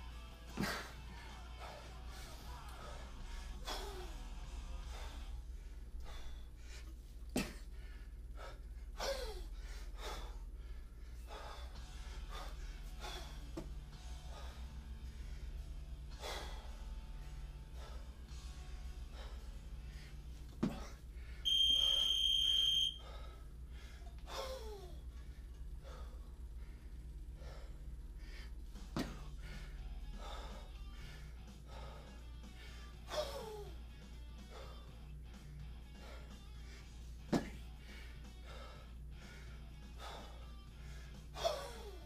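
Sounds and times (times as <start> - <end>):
background music: 0.0 - 6.0, 11.3 - 21.6, 27.2 - 42.0
electronic timer beep: 21.5 - 23.0.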